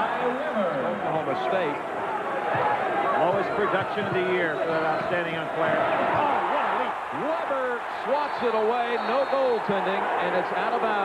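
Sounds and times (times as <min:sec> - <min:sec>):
arena crowd noise: 0:00.0 - 0:11.0
man commentating: 0:03.1 - 0:11.0.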